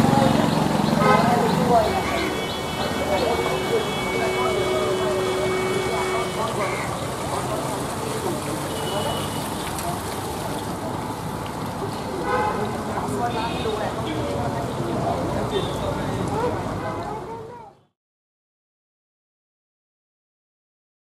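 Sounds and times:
people's voices: 0.0s - 17.9s
road traffic: 0.0s - 18.0s
long steady tone: 1.8s - 7.0s.

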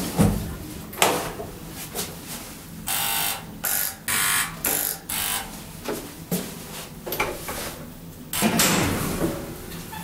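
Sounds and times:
elevator buzzer: 2.9s - 5.6s.

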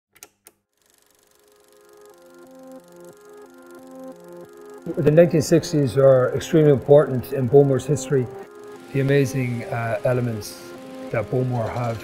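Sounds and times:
film projector clatter: 0.8s - 12.0s
held music notes: 1.8s - 12.0s.

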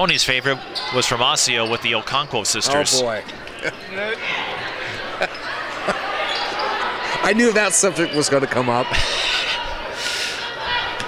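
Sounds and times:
gym background noise: 0.0s - 11.0s.

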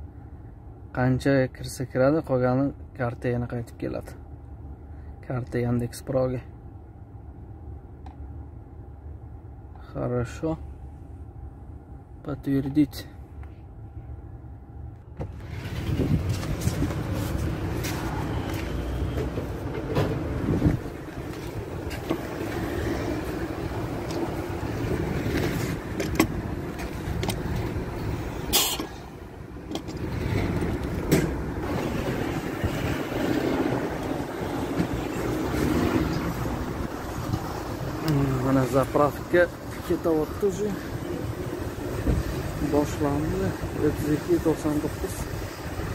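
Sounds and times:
steady filling station noise: 15.2s - 45.9s.

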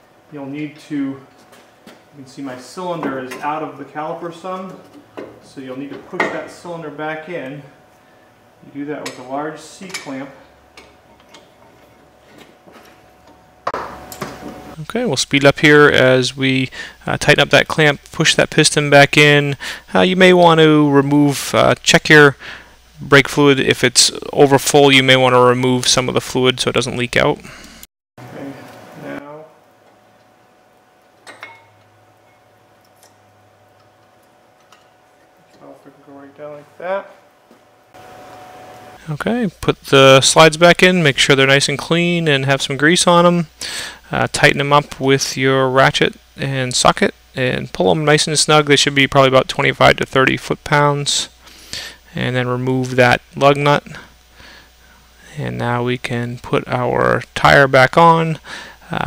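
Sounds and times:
faint shop hum: 0.0s - 59.0s.

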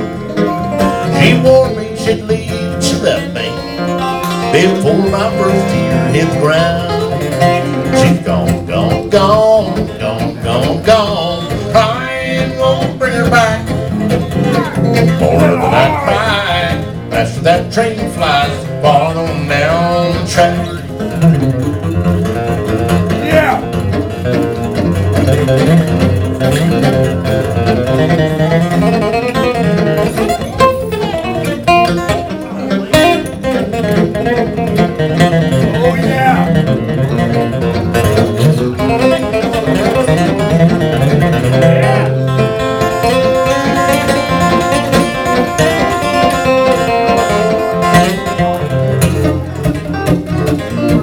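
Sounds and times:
electric guitar lead line: 0.0s - 51.0s
strummed acoustic guitar: 0.0s - 51.0s.

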